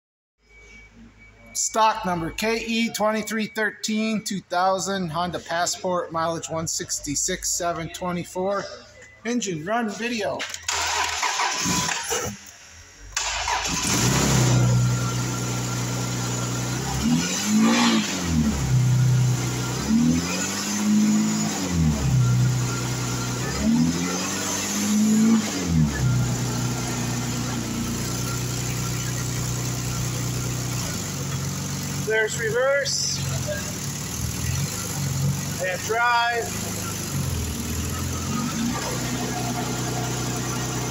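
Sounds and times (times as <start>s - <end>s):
car engine starting: 10.4s - 40.9s
car engine idling and revving: 10.6s - 40.9s.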